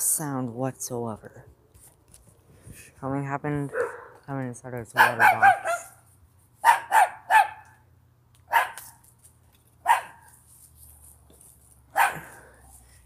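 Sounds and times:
dog barking: 3.7 - 4.2, 5.0 - 6.0, 6.6 - 7.7, 8.5 - 8.9, 9.8 - 10.3, 11.9 - 12.3.

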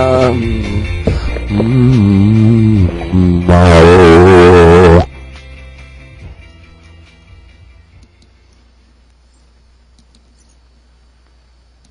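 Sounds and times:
low steady hum: 6.2 - 11.9.

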